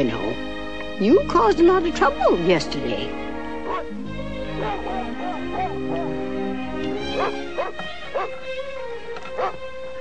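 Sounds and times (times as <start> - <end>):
background music: 0.0 - 10.0
cartoon puppy yipping: 3.7 - 3.9, 4.6 - 6.1.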